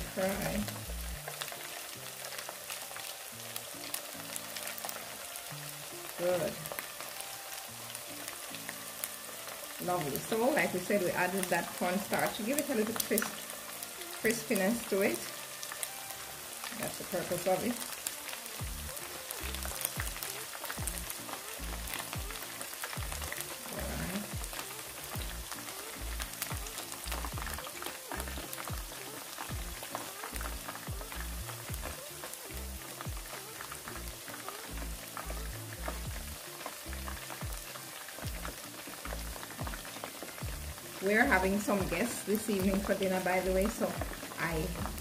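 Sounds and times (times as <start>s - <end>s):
background music with bass line: 0.0s - 2.4s, 5.2s - 45.0s
chicken sizzling in hot oil: 0.0s - 45.0s.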